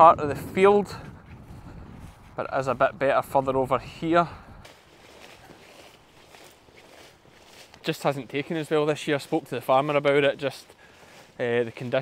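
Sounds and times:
faint footsteps: 0:00.5 - 0:12.0
rustling through leafy crop: 0:04.6 - 0:12.0.

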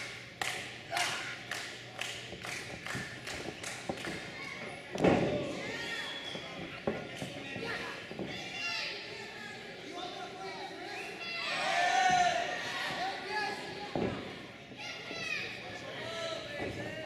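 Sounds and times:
crowd voices calling out: 0:10.8 - 0:16.5.

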